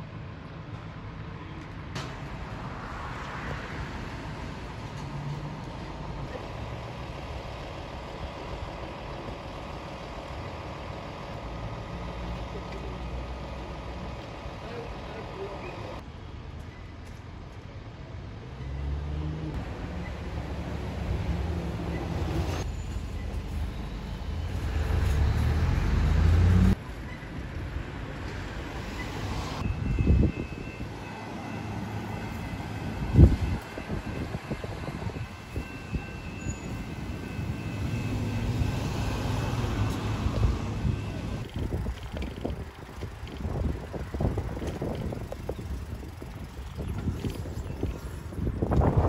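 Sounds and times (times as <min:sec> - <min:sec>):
road traffic: 0:00.0 - 0:49.0
vehicle accelerating: 0:24.1 - 0:26.8.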